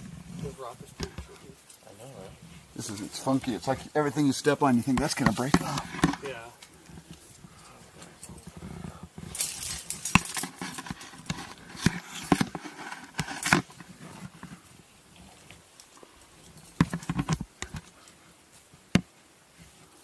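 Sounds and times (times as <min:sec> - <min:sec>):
hands and shoes scraping rock: 0:02.3 - 0:07.2, 0:08.0 - 0:14.6
climbing gear clicking: 0:09.2 - 0:14.3.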